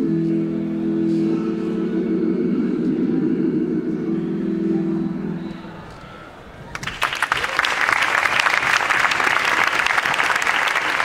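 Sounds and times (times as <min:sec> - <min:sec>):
fluttering synthesizer drone: 0:00.0 - 0:05.9.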